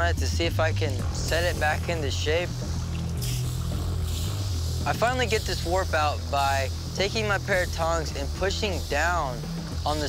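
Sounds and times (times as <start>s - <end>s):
water hissing to steam on hot metal: 0.0s - 10.0s.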